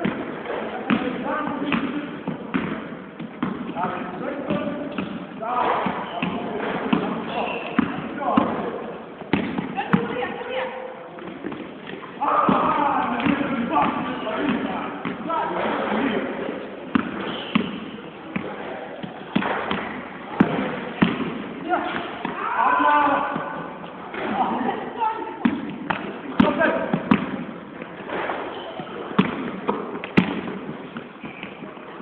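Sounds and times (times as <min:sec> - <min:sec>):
basketball bouncing on floor: 0:00.0 - 0:10.2, 0:11.2 - 0:15.7, 0:16.9 - 0:22.5, 0:25.4 - 0:27.5, 0:28.8 - 0:31.6
shoe squeak: 0:04.9 - 0:08.0, 0:16.5 - 0:20.0, 0:28.1 - 0:29.2, 0:30.8 - 0:32.0
basketball bouncing on hardwood: 0:09.2 - 0:10.2, 0:16.9 - 0:22.4.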